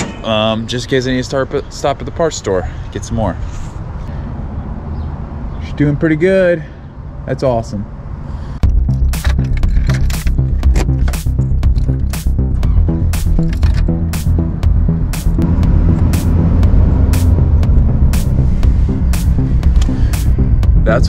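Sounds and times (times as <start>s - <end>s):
music with beat and deep bass: 8.6s - 21.0s.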